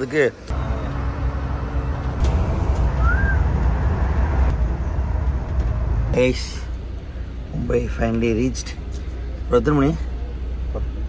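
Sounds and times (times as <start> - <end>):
engine and tyre rumble: 0.0 - 11.0
rising chirp: 0.6 - 5.2.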